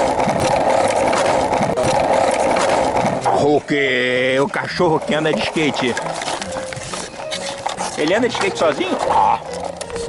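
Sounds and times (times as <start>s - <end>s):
skateboard wheels rolling on asphalt: 0.0s - 10.0s.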